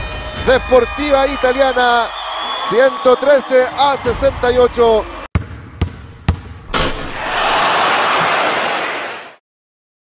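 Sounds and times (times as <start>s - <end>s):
basketball bouncing on hard floor: 5.3s - 6.9s.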